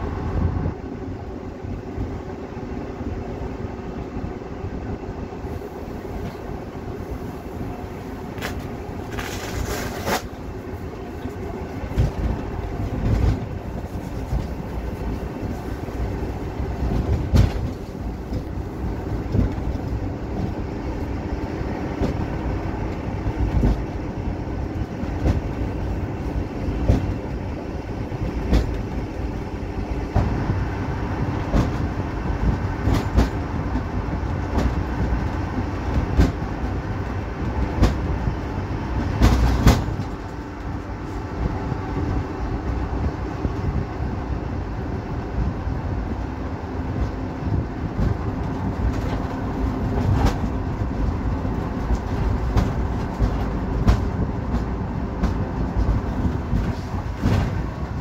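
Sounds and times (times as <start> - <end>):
engine and road rumble: 0.0 - 58.0
vehicle body rattling and clunking: 8.2 - 44.0, 45.3 - 58.0.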